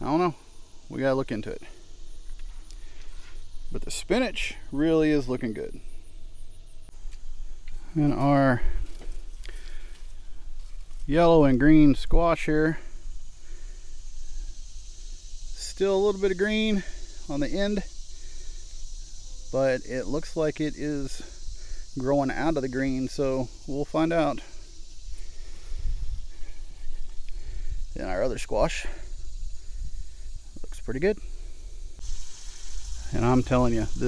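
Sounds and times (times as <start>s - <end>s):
faint hiss: 0.0s - 34.0s.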